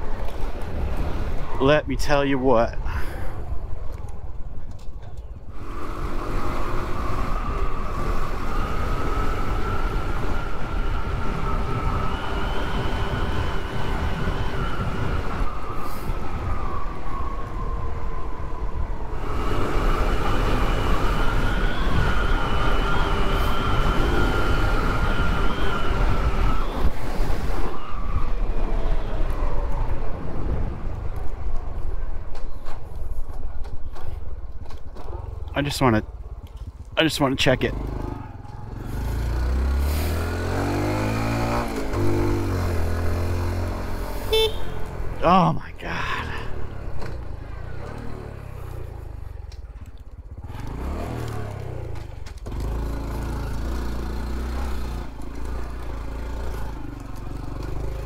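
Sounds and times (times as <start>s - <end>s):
small motorcycle engine whining: 5.6s - 17.8s, 19.0s - 29.6s
wind rumbling on microphone: 6.8s - 19.6s, 20.6s - 35.4s.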